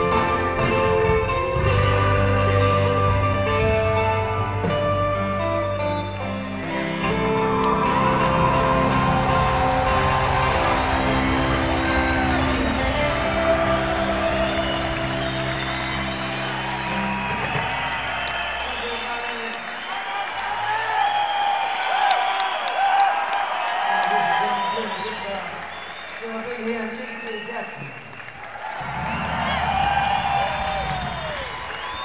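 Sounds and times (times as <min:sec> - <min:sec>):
live band playing chords: 0:00.0 - 0:19.0
audience cheering and whooping: 0:05.8 - 0:32.0.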